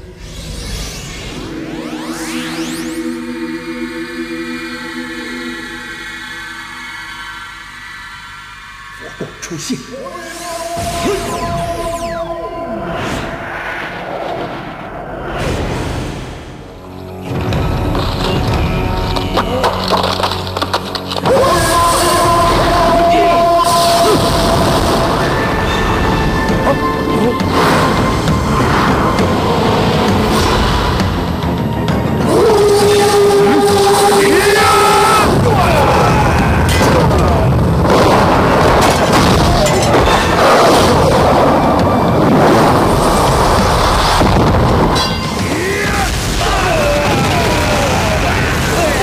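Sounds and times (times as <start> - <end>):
film score music: 0.0 - 49.0
rock breaking crackling: 17.0 - 22.8
rumbling blast effects: 34.8 - 49.0.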